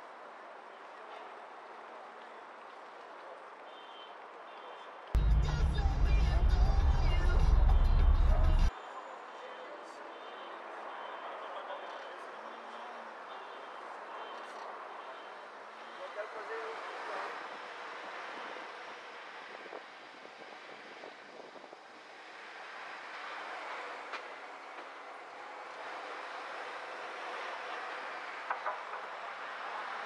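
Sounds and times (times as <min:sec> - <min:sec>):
city traffic noise: 0:00.0 - 0:30.0.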